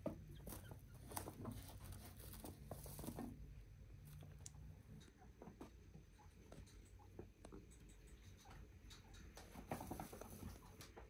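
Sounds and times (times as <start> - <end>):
chinchillas moving on carpet: 0.0 - 11.0.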